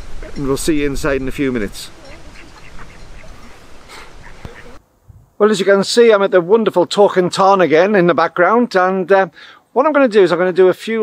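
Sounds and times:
ducks quacking: 0.0s - 4.8s
wind rumbling on microphone: 0.0s - 5.4s.

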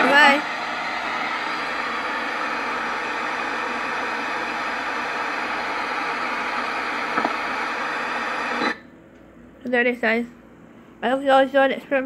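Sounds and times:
radio static hiss: 2.3s - 8.8s.

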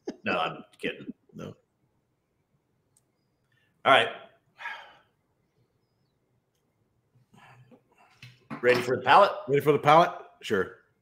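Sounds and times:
man speaking: 0.1s - 1.6s, 3.9s - 4.3s, 8.6s - 10.8s.

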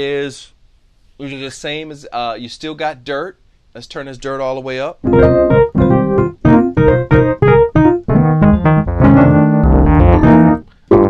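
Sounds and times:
overdriven electric piano chords: 5.0s - 11.0s.

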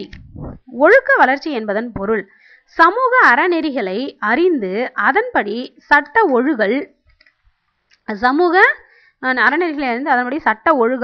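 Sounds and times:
woman speaking: 0.0s - 7.0s, 8.0s - 11.0s.

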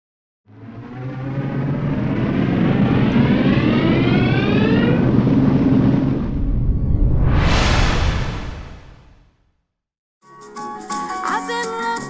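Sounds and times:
deep rumble with rising whine: 0.5s - 9.5s.

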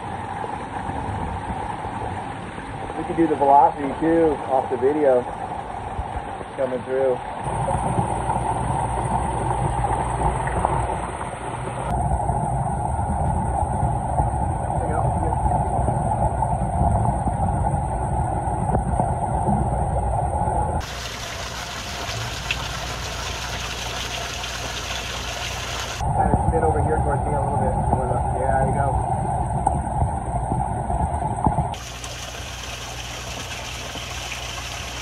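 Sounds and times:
underwater water rush and bubbles: 0.0s - 26.5s, 27.3s - 35.0s
splashing water hiss: 20.8s - 26.0s, 31.8s - 35.0s.

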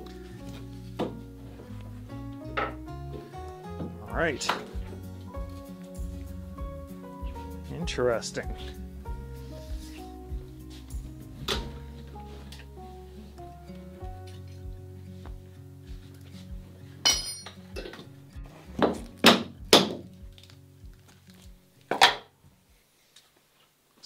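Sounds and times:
background music with steady beat: 0.0s - 21.7s.

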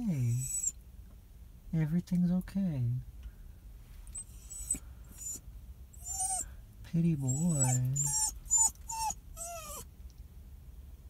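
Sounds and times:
small dog whining: 0.2s - 0.8s, 4.2s - 5.4s, 6.0s - 6.5s, 7.2s - 9.9s.

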